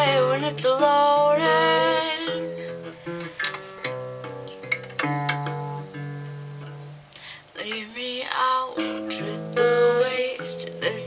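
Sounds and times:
acoustic guitar chords: 0.0 - 11.0.

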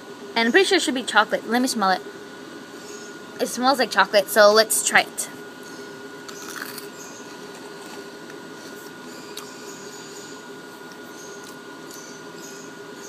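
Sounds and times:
background hum and hiss: 0.0 - 13.0.

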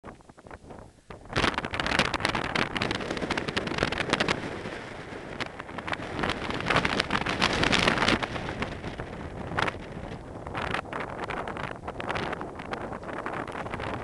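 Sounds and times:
wind buffeting microphone: 0.0 - 14.0.

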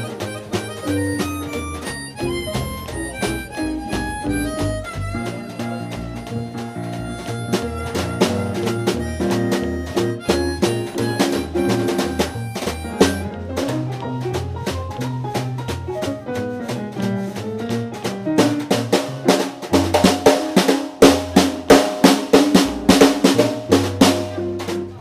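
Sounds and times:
bass line: 0.0 - 25.0
drums: 0.0 - 25.0.

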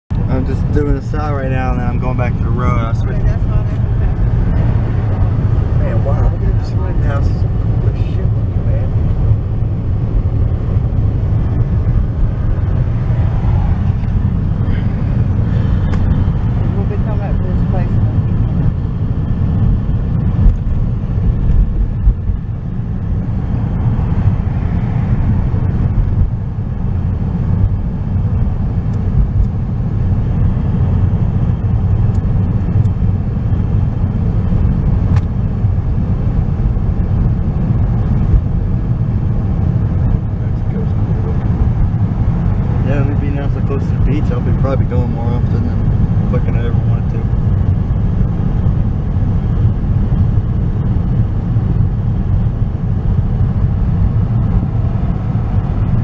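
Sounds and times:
car engine and tyre rumble: 0.1 - 56.0.

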